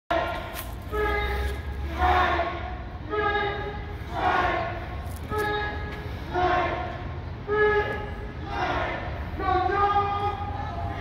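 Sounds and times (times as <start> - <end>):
crowd chanting: 0.1 - 4.9, 7.8 - 9.8
crowd shouting: 0.1 - 11.0.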